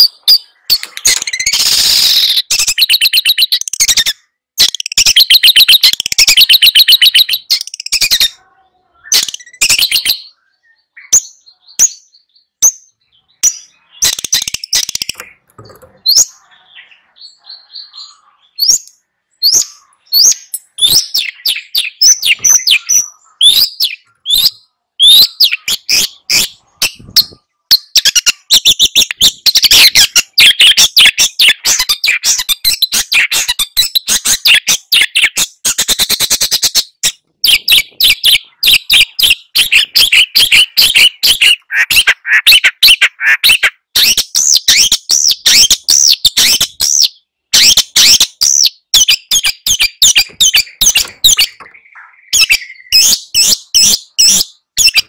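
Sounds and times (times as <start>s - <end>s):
bird chattering song: 0.0s - 55.0s.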